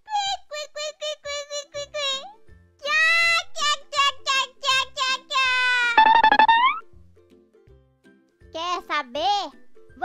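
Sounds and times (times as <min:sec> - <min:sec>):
background music: 0:00.8 - 0:10.0.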